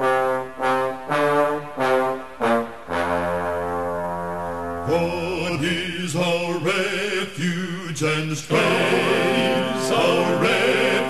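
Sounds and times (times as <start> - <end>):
brass chords: 0.0 - 5.8, 8.5 - 11.0.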